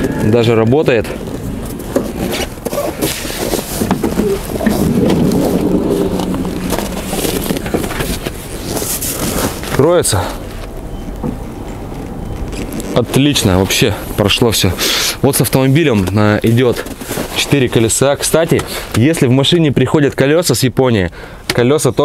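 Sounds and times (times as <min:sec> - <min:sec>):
rustle: 0:00.0 - 0:18.9.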